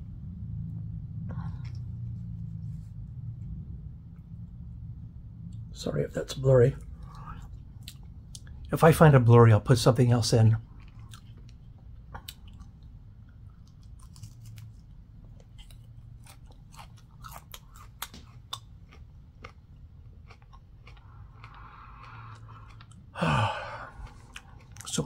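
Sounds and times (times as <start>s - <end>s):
low steady hum: 0.0s - 25.0s
person chewing crunchy pepper: 6.8s - 8.7s, 10.6s - 25.0s.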